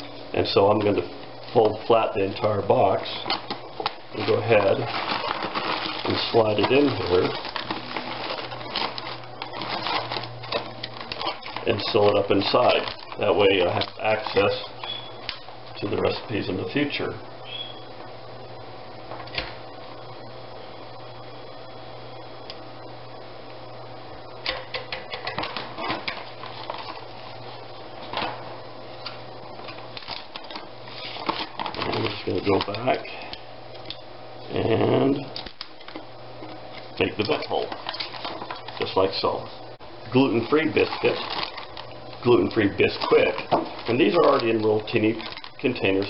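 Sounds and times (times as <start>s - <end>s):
steady low hum: 0.0s - 46.0s
foil bag crinkling: 0.9s - 16.5s, 25.3s - 28.2s, 29.0s - 34.0s, 34.6s - 46.0s.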